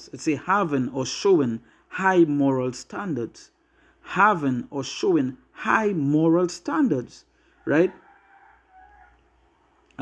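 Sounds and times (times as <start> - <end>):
faint animal call: 7.5 - 9.3.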